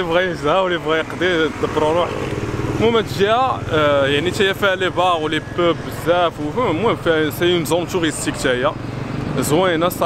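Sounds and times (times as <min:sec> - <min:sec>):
engine running steadily: 0:00.0 - 0:10.0
man speaking: 0:00.0 - 0:10.0.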